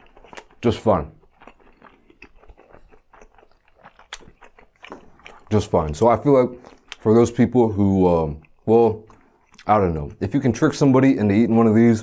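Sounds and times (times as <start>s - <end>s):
chewing with mouth clicks: 0.0s - 10.4s.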